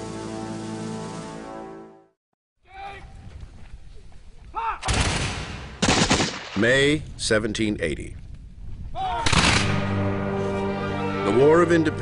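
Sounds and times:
people shouting: 2.6 - 3.1, 9.0 - 9.4
volley of musket fire: 4.8 - 6.6, 9.2 - 9.9.

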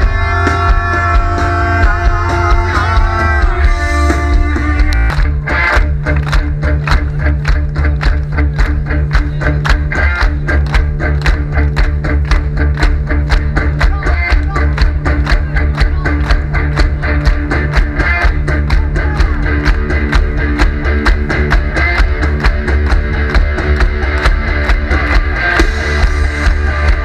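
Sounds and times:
bass guitar: 0.0 - 27.0
drums keeping a fast beat: 0.0 - 27.0
electric guitar: 0.0 - 27.0.

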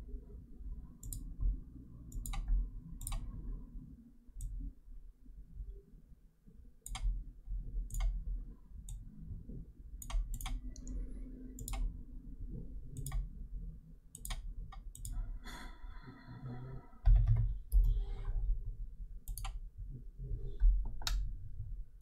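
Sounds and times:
computer mouse clicking: 1.0 - 1.3, 2.1 - 3.3, 6.8 - 7.2, 7.9 - 8.2, 10.0 - 11.0, 11.6 - 11.9, 12.9 - 13.3, 14.1 - 15.2, 19.2 - 19.6.

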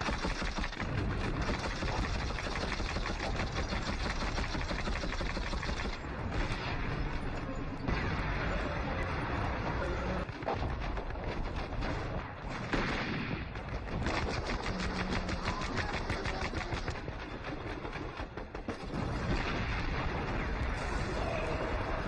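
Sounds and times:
rifle shots: 0.0 - 20.9
machine-gun fire: 0.0 - 21.2.

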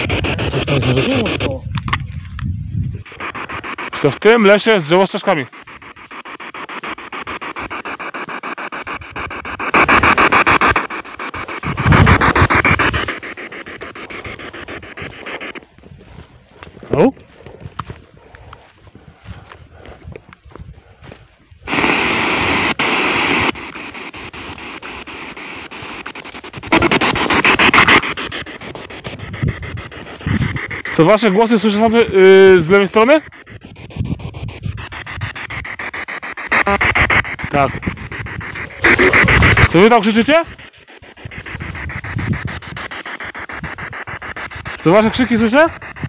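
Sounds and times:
clipped radio voice fragments: 0.0 - 1.7, 36.0 - 40.7
radio static: 0.0 - 46.0.

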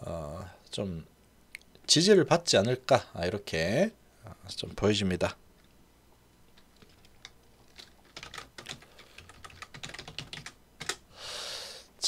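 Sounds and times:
computer keyboard typing: 6.6 - 11.0.

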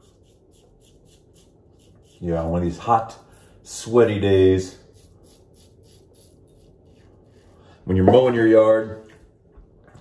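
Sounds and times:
razor scraping stubble: 0.0 - 7.6.

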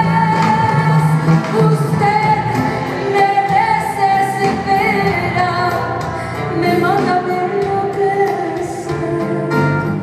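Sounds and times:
live band playing a latin ballad: 0.0 - 10.0
woman singing: 0.0 - 10.0.

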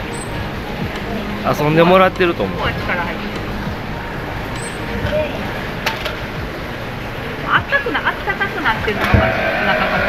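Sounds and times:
low machinery hum: 0.0 - 10.0.

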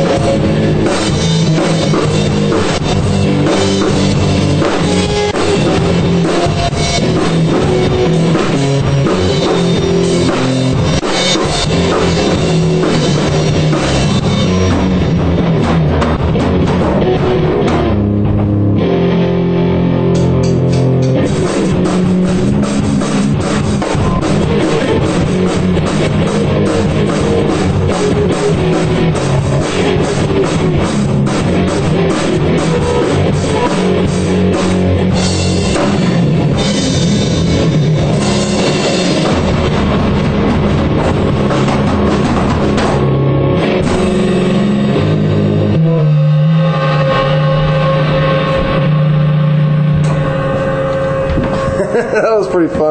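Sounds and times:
drum kit beating: 0.0 - 52.9
electric guitar chords: 0.0 - 52.9.

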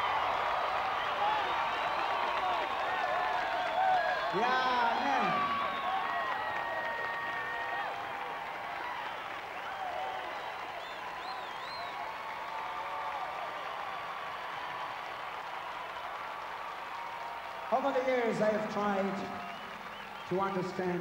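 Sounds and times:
audience applauding: 0.0 - 21.0.

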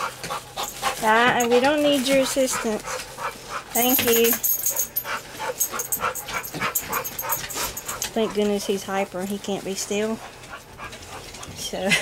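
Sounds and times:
dog panting rapidly: 0.0 - 12.0.

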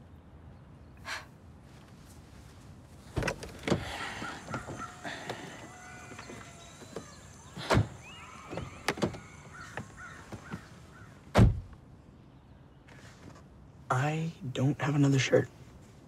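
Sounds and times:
thumps against car door and seat: 3.1 - 10.7, 11.3 - 11.8
car door opening: 3.1 - 11.8.

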